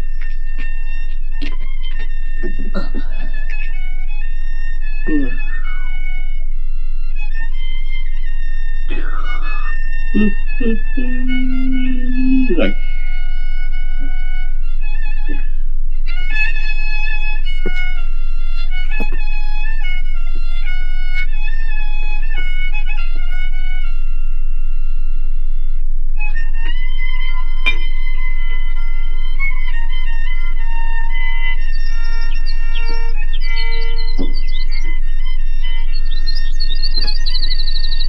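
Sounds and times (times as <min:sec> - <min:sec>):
bowed fiddle melody: 0:00.0 - 0:38.0
man's voice: 0:12.1 - 0:12.8.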